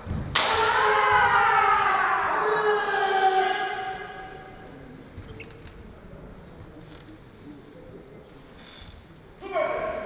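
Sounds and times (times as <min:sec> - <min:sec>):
loud shout: 0:00.4 - 0:04.7.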